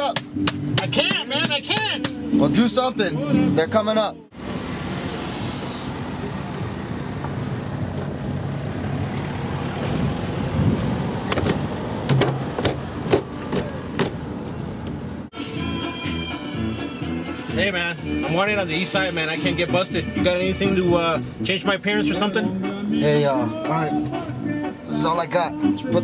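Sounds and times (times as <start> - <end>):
vehicle engine rumbling: 1.4 - 15.4.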